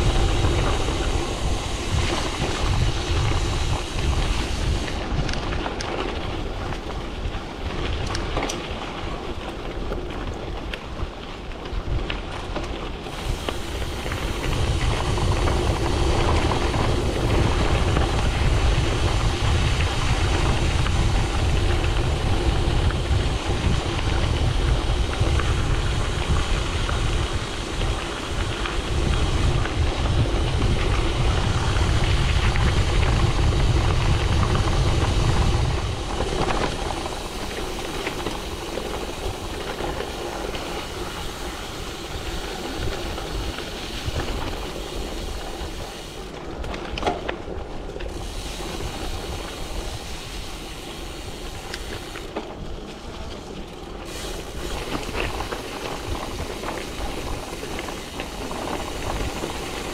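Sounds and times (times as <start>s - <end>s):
bike tyres rolling on dirt: 0.0s - 59.9s
wind rumbling on microphone: 0.0s - 59.9s.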